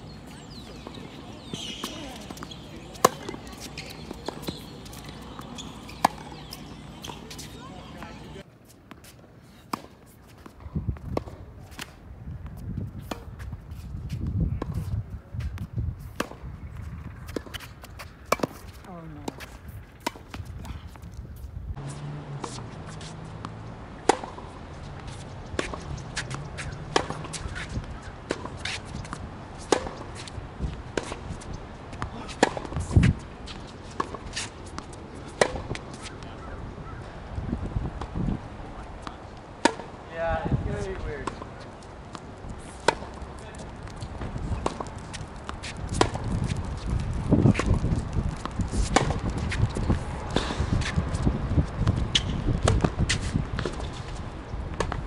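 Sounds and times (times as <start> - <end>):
tennis balls struck by rackets: 0.0 - 14.9, 15.5 - 36.5, 39.0 - 40.0, 40.7 - 55.0
tennis balls bouncing on court: 0.0 - 36.5, 39.0 - 55.0.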